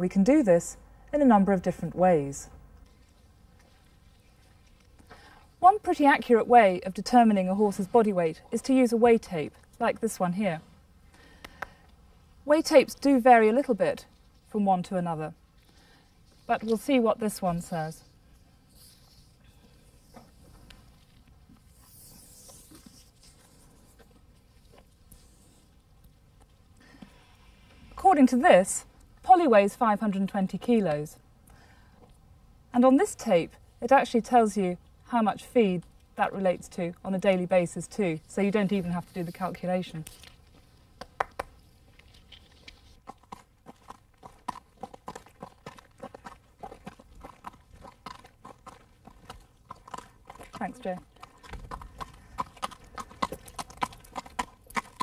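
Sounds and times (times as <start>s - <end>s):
tape rustling on horse coat: 15.5s - 25.8s, 38.1s - 40.9s, 41.6s - 43.0s
horse hooves clip-clopping: 40.6s - 55.0s.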